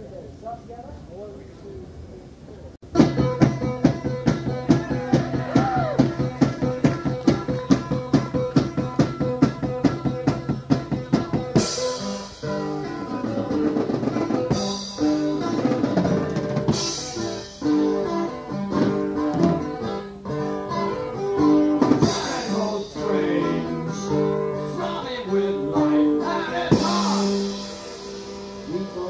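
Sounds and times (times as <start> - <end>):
drum kit with cymbal crashes: 2.8 - 29.0
held guitar or piano chords: 2.8 - 29.0.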